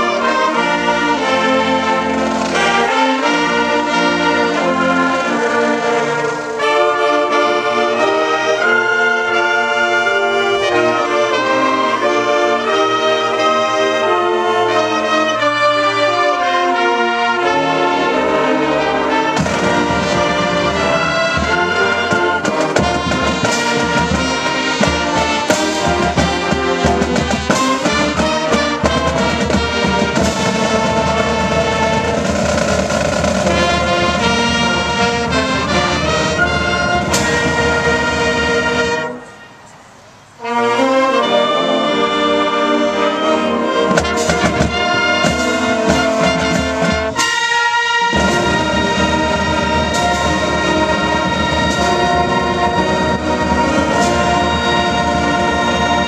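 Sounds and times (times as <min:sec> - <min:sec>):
marching band playing: 0:00.0 - 0:56.0
drums beating: 0:00.5 - 0:06.8, 0:19.2 - 0:39.2, 0:43.8 - 0:56.0.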